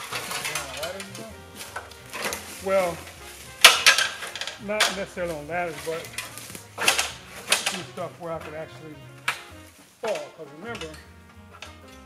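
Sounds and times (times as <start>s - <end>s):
metal stepladder clanking: 0.0s - 12.0s.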